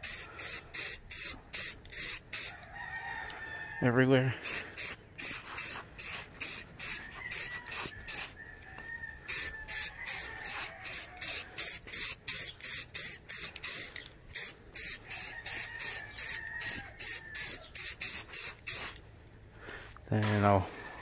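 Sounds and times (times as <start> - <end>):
spray can hissing bursts: 0.0 - 2.6, 4.4 - 8.4, 9.3 - 19.0.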